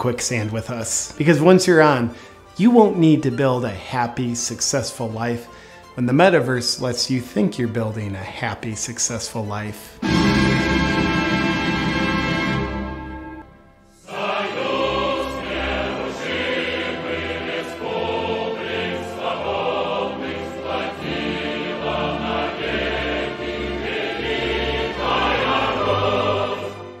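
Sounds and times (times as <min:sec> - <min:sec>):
choir singing with accompaniment: 0:10.0 - 0:27.0.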